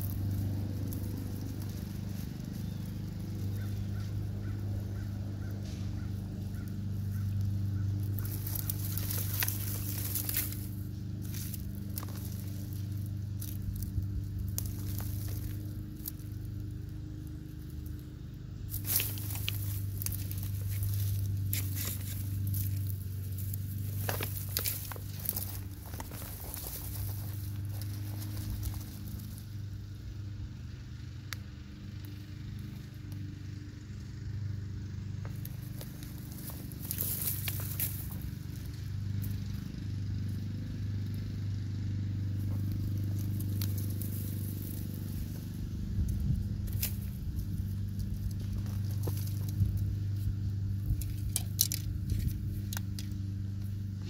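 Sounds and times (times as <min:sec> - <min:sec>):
leaves and stems rustling: 0:00.0 - 0:29.7, 0:35.2 - 0:39.6, 0:42.3 - 0:54.0
roots and soil crackling: 0:00.0 - 0:54.0
steady low hum: 0:00.0 - 0:54.0.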